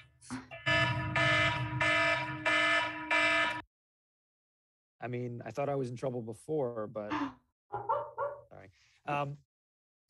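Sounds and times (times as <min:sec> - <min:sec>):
phone alarm buzzing: 0:00.5 - 0:03.6.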